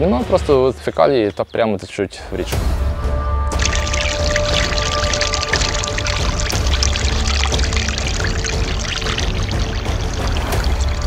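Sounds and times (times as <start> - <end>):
background music: 0.0 - 11.0
sewage pouring from pipe into pit: 3.5 - 11.0.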